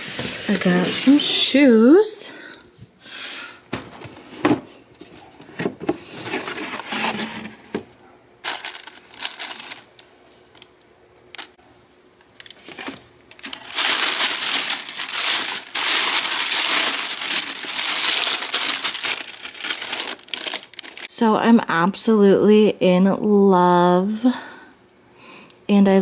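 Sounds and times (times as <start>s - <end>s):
tissue paper crinkling: 8.4s - 10.0s, 12.4s - 21.1s.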